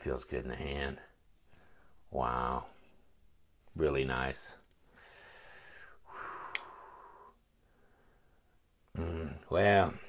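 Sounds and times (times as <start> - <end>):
man breathing out: 4.8 - 8.4.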